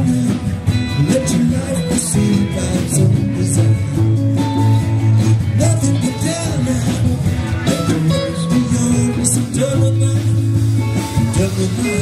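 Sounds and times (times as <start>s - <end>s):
electric bass: 0.0s - 12.0s
electric guitar: 0.0s - 12.0s
person singing: 0.0s - 12.0s.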